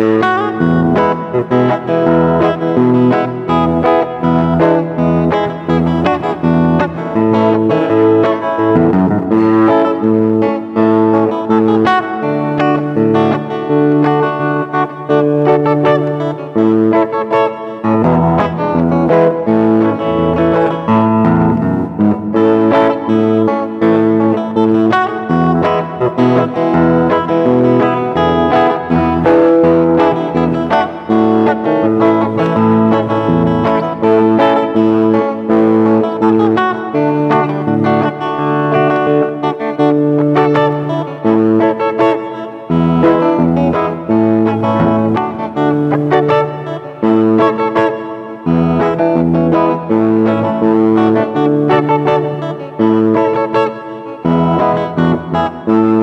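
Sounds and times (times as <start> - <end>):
fingerstyle electric guitar: 0.0 - 56.0.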